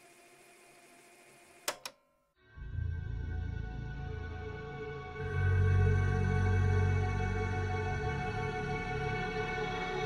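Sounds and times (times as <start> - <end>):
sharp clicks: 1.6 - 2.0.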